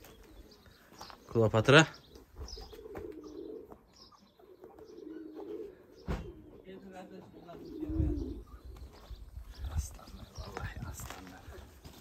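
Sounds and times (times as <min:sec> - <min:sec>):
doves cooing: 0:00.0 - 0:12.0
small birds chirping: 0:00.0 - 0:12.0
low thump: 0:06.0 - 0:06.4.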